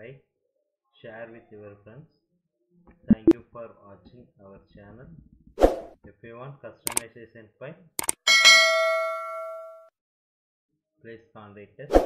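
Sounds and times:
bell ding ringing: 8.3s - 9.9s.

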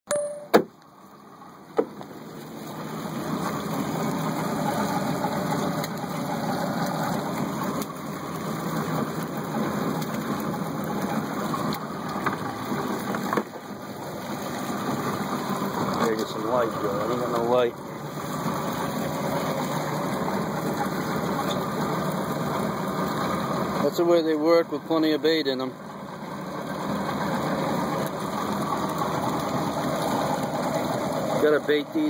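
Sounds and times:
sharp knocks: 0.1s - 0.7s
engine idling: 1.3s - 32.0s.

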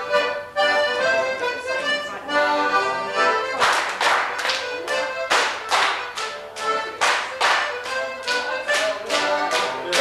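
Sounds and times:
folk dance tune: 0.0s - 10.0s
sharp rhythmic strikes: 0.0s - 10.0s.

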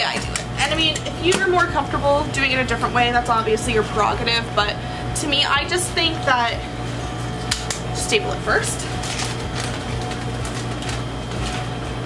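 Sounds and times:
appliance humming: 0.0s - 12.0s.

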